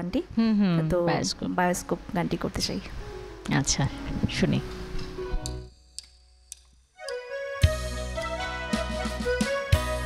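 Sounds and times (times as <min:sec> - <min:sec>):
low background tones: 0:00.0 - 0:07.4
drumstick count-in ticks: 0:05.4 - 0:07.2
band music: 0:07.0 - 0:10.0.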